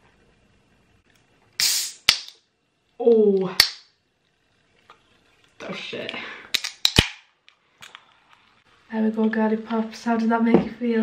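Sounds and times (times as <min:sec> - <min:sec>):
can popping open with hiss: 0:01.6 - 0:02.5, 0:06.5 - 0:08.0.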